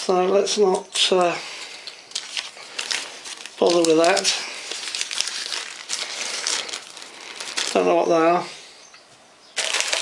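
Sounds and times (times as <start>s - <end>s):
paper and plastic bag crinkling: 0.3s - 8.5s, 9.6s - 10.0s.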